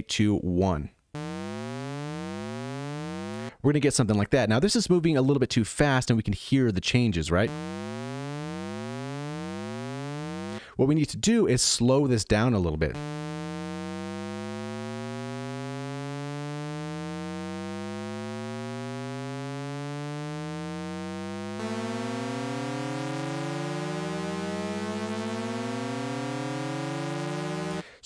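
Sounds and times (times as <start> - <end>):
synthesizer rising shepard tone: 1.2 - 3.5, 7.5 - 10.6, 13.0 - 27.8.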